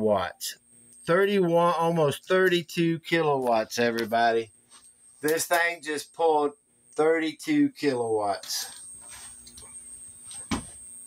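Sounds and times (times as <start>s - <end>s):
faint high whine: 0.0s - 11.0s
low steady hum: 0.0s - 11.0s.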